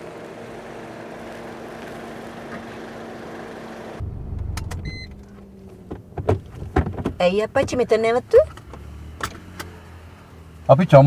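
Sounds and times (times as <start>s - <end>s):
car cabin drone: 0.0s - 11.0s.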